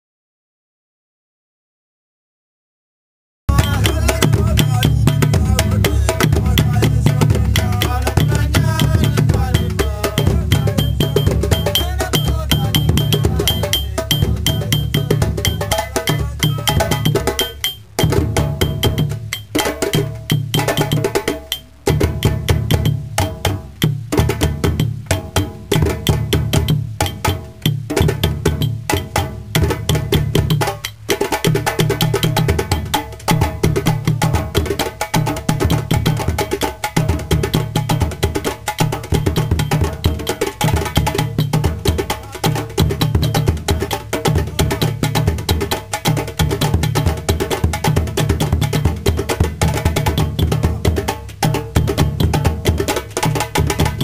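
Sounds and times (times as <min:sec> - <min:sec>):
bass drum beaten with stick: 0:03.5 - 0:54.0
hand drums: 0:03.5 - 0:54.0.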